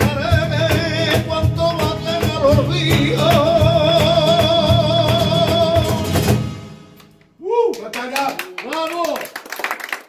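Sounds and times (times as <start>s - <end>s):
rhythmic hand claps: 7.0s - 10.0s.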